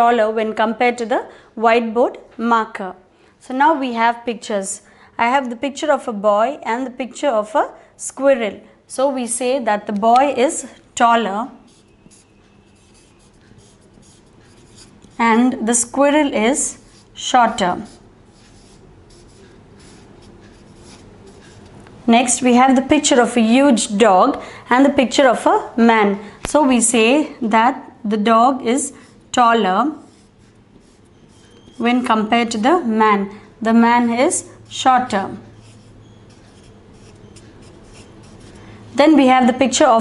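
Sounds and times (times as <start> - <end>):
marker pen writing on paper: 11.6 - 21.8, 29.9 - 32.2, 35.4 - 39.2.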